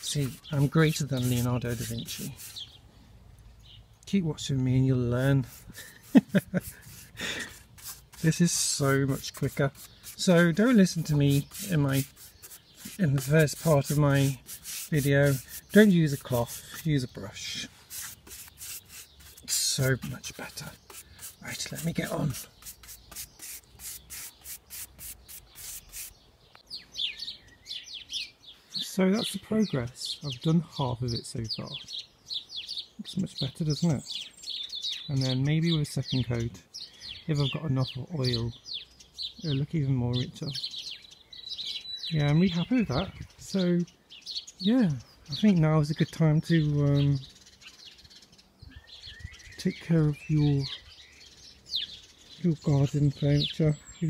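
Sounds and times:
paintbrush swishing on wood: 0.0 - 2.7, 5.4 - 17.0, 17.6 - 26.2
bird chirping: 0.0 - 54.0.

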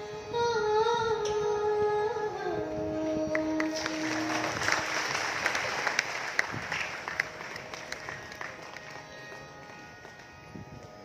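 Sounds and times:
carnatic music held note: 0.0 - 11.0
audience applause: 3.8 - 9.8.

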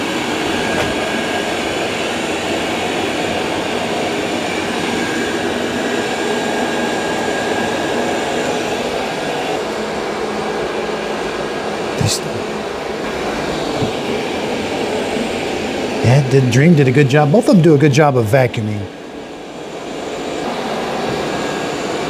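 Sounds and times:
robot vacuums whirring: 13.0 - 16.0.

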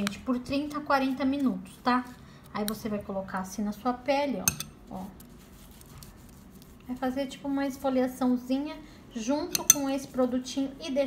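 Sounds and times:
paste scraping and rubbing on skin: 4.9 - 7.2
soft scratches: 4.9 - 7.4.

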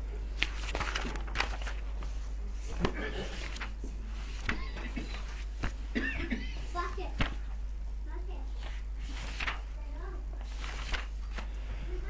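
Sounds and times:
low electrical hum: 0.0 - 12.0
book pages rustling and turning: 0.3 - 5.9, 6.7 - 7.5, 8.5 - 12.0
sharp paper click: 10.4 - 11.5.

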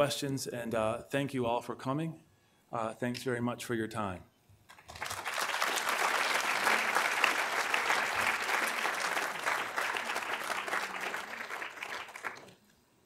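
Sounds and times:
audience applauding: 4.7 - 12.6.

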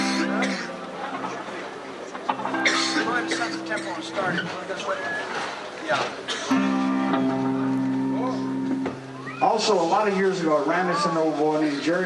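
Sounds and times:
ringing guitar chord: 2.3 - 4.8, 6.5 - 9.4.

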